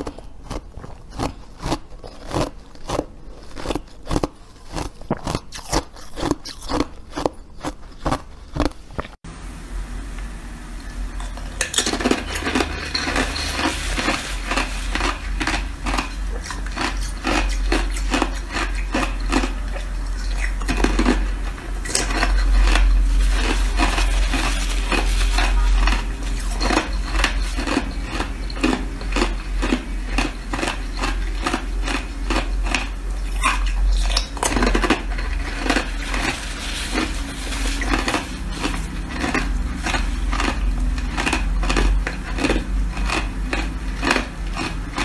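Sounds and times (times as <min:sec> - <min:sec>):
ice being chewed: 0:00.0 - 0:09.2, 0:11.2 - 0:45.0
steady low hum: 0:00.0 - 0:45.0.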